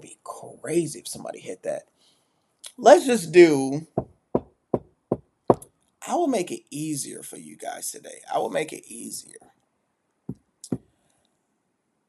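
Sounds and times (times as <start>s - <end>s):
sharp knocks on hard surface: 4.0s - 5.7s.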